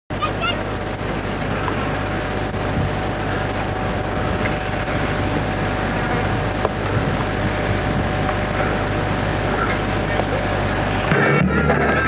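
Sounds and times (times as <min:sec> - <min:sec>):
faint steady hum: 0:00.1 - 0:12.0
wind rumble on microphone: 0:00.6 - 0:11.9.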